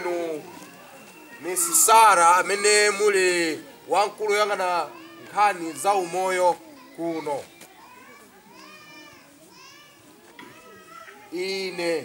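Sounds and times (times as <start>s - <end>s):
faint children chattering: 0.0s - 12.0s.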